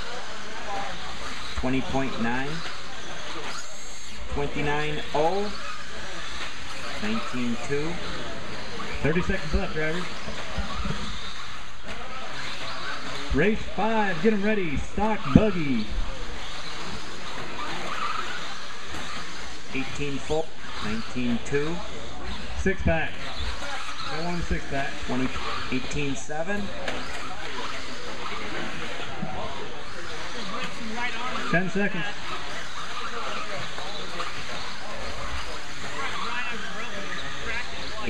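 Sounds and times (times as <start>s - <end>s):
background voices talking: 0.0s - 38.0s
faint motor whine: 0.0s - 38.0s
indoor hall din: 0.0s - 38.0s
rc cars motor and tyre noise: 0.0s - 38.0s.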